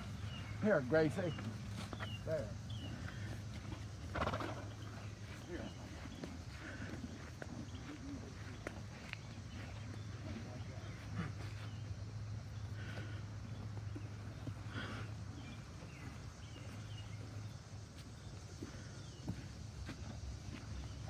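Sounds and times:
animals chewing: 0.0 - 21.0
husks rustling: 0.0 - 21.0.

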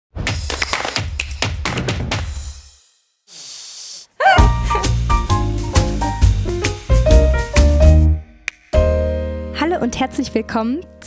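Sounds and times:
sharp percussive hits: 0.2 - 3.2.

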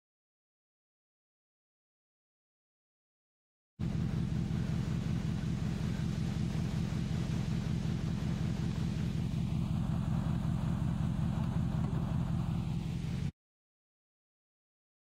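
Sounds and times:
vehicle engine idling: 3.8 - 13.3.

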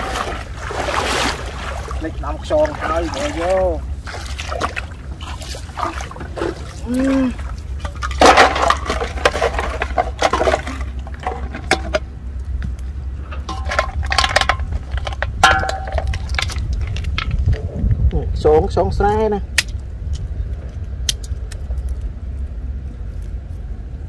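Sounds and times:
low rumble: 0.0 - 24.0
plastic bottles clattering: 7.8 - 12.0, 13.5 - 17.4
metal basin clinking: 7.8 - 12.1, 13.4 - 16.6.

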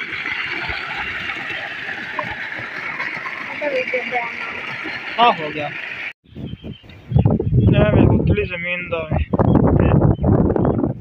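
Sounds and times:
water gushing from a pipe: 0.0 - 6.1.

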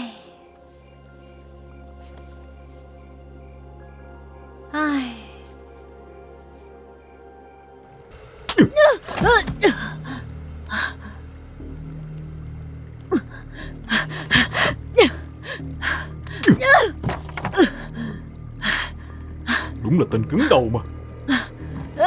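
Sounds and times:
low background music drone: 0.0 - 22.0.

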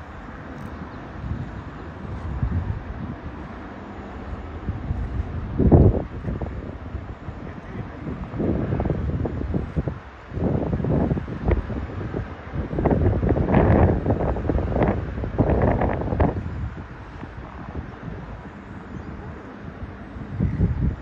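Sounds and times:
wind gusts buffeting microphone: 0.0 - 21.0.

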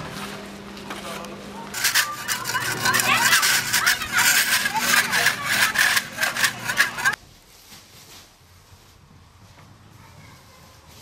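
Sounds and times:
tool scraping plastered wall: 1.7 - 7.2.

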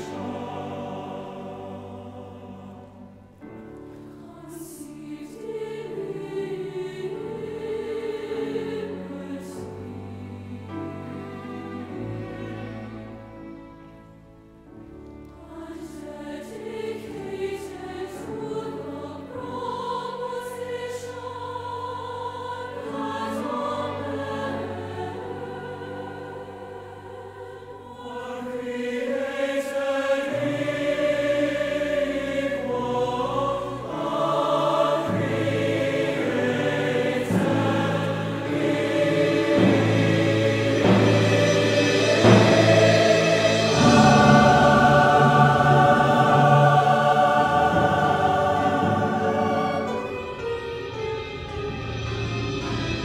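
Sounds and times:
choir singing with orchestra: 0.0 - 53.0.

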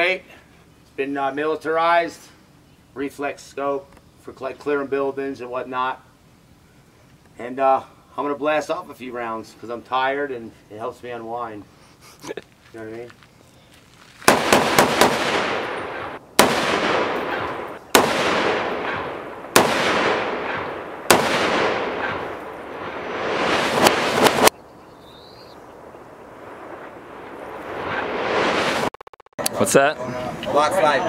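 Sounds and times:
quiet hiss: 0.0 - 14.4
rifle shots with echoing rumble: 14.3 - 24.5.

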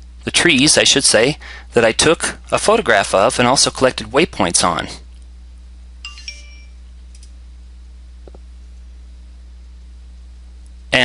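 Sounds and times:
low electrical hum: 0.0 - 11.0
two-note computer chime: 6.0 - 6.8.

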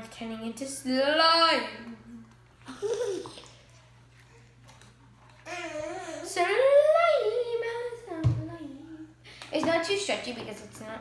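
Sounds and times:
person laughing: 2.6 - 3.5
wet squishing of slime stirred: 3.3 - 5.5.

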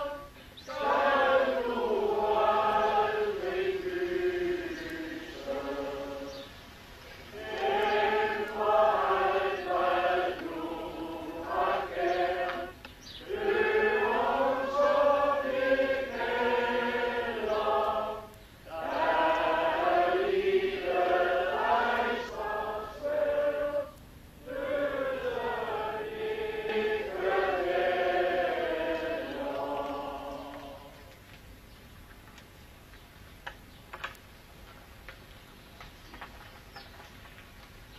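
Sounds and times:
group singing slow song: 0.0 - 31.2.

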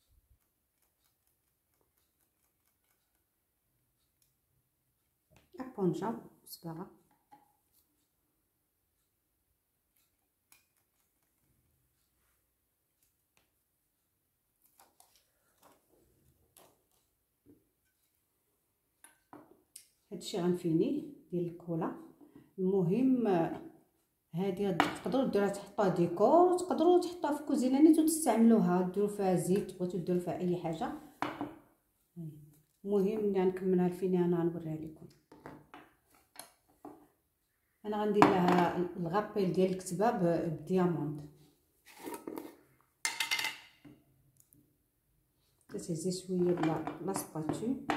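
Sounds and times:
woman speaking: 5.6 - 6.9, 20.1 - 22.0, 22.6 - 23.6, 24.3 - 31.1, 32.2 - 35.1, 37.8 - 41.3, 45.7 - 47.9
faint knocks and rustles: 35.1 - 37.2.

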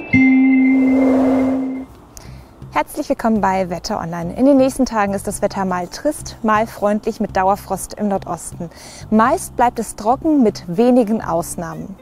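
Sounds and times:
long held jingle note: 0.0 - 1.9
soft noise swell: 0.2 - 1.9.

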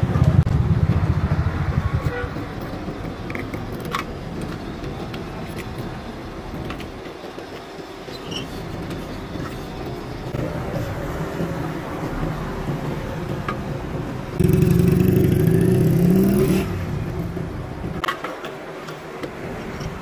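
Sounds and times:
motorcycle engine running: 0.0 - 2.6, 14.4 - 17.6.

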